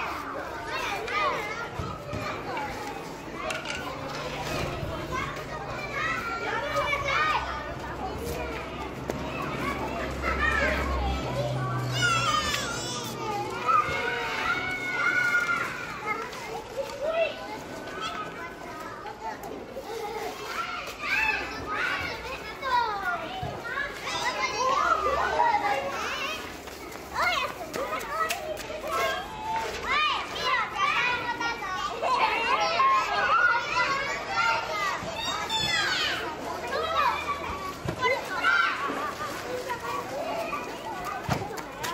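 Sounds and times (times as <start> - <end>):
children shouting and calling: 0.0 - 41.9.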